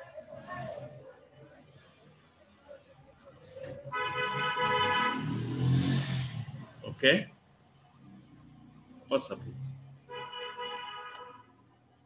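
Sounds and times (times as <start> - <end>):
motor vehicle passing: 4.4 - 7.1, 7.9 - 10.1.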